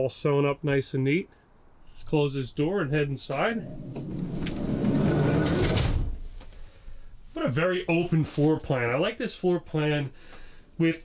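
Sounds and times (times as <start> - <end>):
van sliding door rumbling shut: 3.6 - 6.2.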